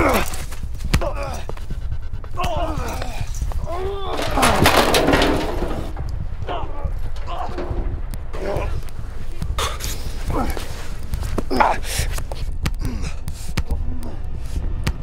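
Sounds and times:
men grunting and crying out: 0:00.0 - 0:01.6, 0:02.3 - 0:08.8, 0:09.6 - 0:12.0
trash barrel crashing over: 0:04.1 - 0:08.8
thuds: 0:04.1 - 0:10.3.

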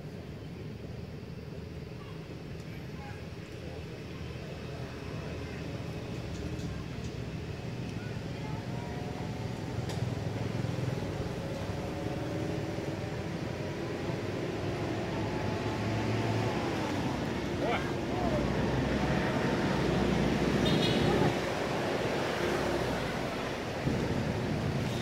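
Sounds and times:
faint indistinct voices: 0:00.1 - 0:25.0
low vehicle rumble: 0:05.6 - 0:25.0.

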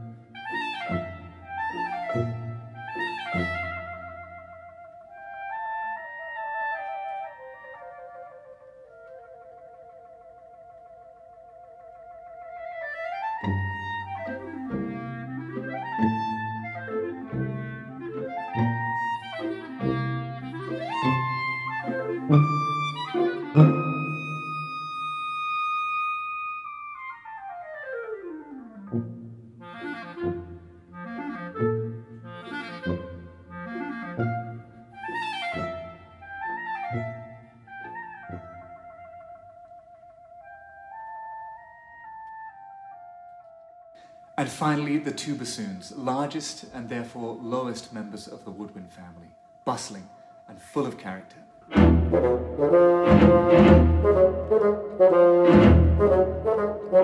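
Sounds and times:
orchestral accompaniment: 0:00.0 - 0:07.0, 0:13.2 - 0:26.0, 0:28.3 - 0:39.2, 0:51.7 - 0:57.0
clarinets playing: 0:00.0 - 0:57.0.

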